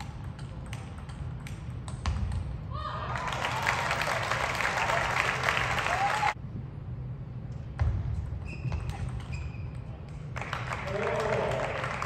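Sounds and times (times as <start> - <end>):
cheers: 2.7 - 6.4
audience applauding: 3.2 - 6.4, 10.4 - 12.0.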